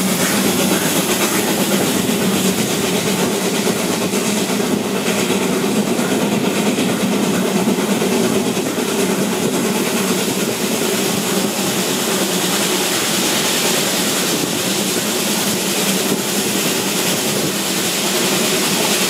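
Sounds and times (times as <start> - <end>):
train wheels rumbling on rails: 0.0 - 19.0.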